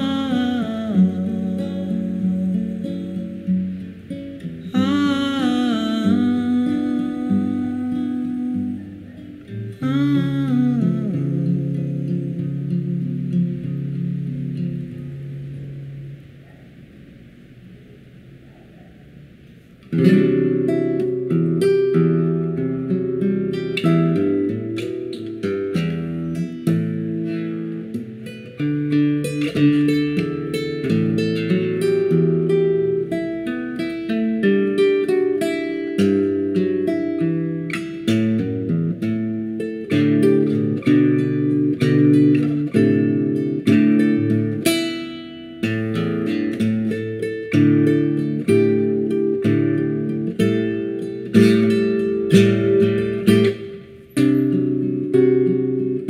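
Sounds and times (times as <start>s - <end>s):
music: 0.0s - 16.5s, 19.8s - 56.0s
acoustic guitar plucking: 0.0s - 56.0s.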